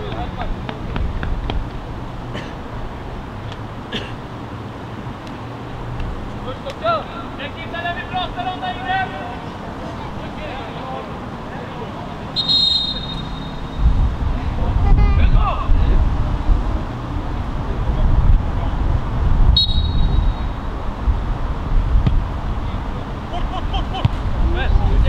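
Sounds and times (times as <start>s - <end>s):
referee's whistle blast: 12.4s - 13.8s, 19.6s - 20.6s.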